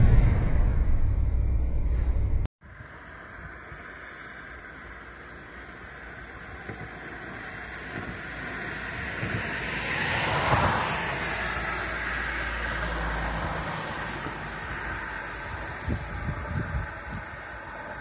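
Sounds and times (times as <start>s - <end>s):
wind rumble on microphone: 0.0s - 18.0s
car driving past: 2.8s - 18.0s.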